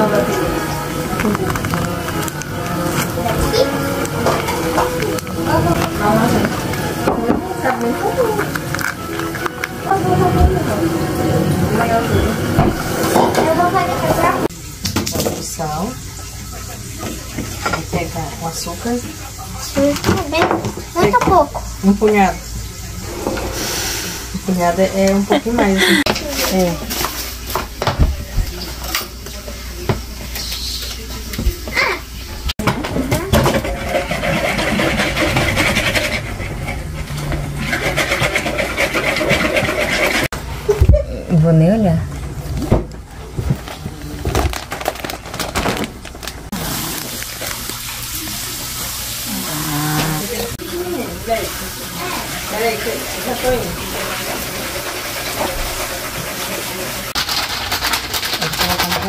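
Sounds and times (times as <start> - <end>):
containers and dishes rattling: 32.6 - 40.3, 52.5 - 59.0
knocks and scraping at bowl: 32.7 - 40.3.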